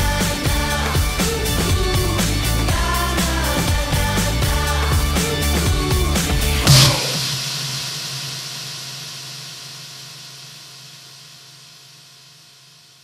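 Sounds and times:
hissing music hit tail: 0:03.4 - 0:11.1.

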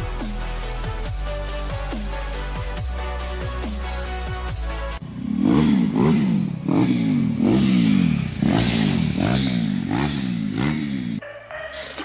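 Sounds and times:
electronic music: 0:00.0 - 0:05.0, 0:10.0 - 0:12.0
motorcycle engine revving: 0:03.7 - 0:11.2.

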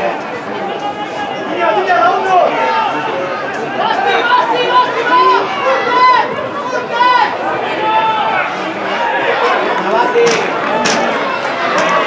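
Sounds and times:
chatter: 0:00.0 - 0:12.0
people shouting and calling out: 0:00.0 - 0:12.0.

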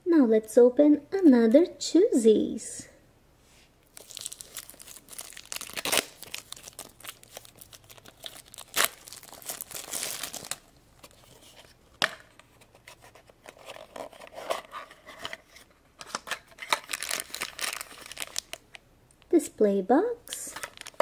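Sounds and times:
plastic film crinkling and tearing: 0:03.9 - 0:11.6, 0:16.1 - 0:18.8, 0:20.3 - 0:21.0.

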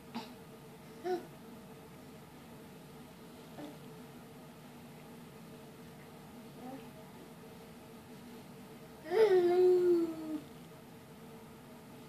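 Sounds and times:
baby whining cry: 0:09.0 - 0:10.4.

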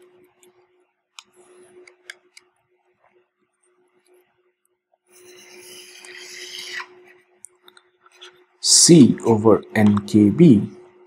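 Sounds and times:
stylus scratching on tablet: 0:05.1 - 0:07.3.

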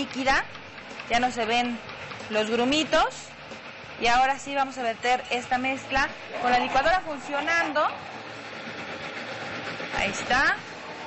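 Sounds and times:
blender running: 0:00.0 - 0:11.0.

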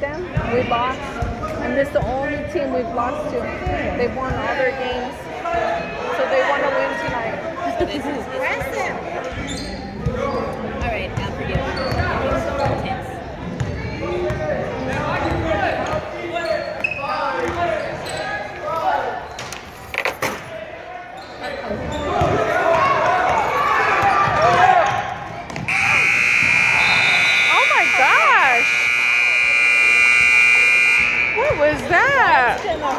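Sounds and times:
crowd voices: 0:00.0 - 0:32.9
scoreboard buzzer tone: 0:25.7 - 0:32.6.

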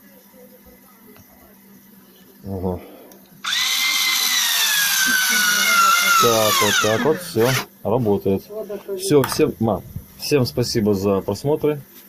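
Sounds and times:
cordless screwdriver motor whining: 0:03.4 - 0:07.7.

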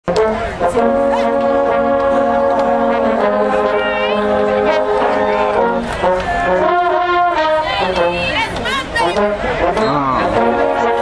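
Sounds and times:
brass band long chords: 0:00.0 - 0:11.0.

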